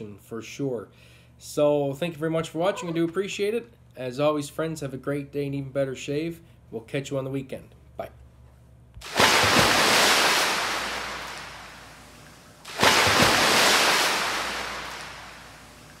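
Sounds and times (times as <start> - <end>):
waves breaking on shore: 9.0 - 16.0.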